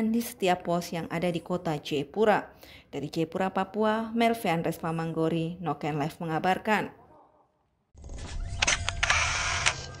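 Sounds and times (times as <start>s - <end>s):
camera shutter clicks: 8.6s - 10.0s.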